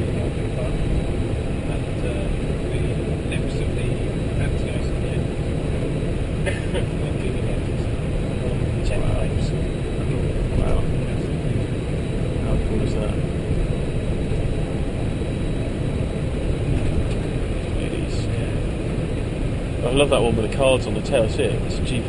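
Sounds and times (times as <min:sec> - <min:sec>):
low cockpit rumble: 0:00.0 - 0:22.0.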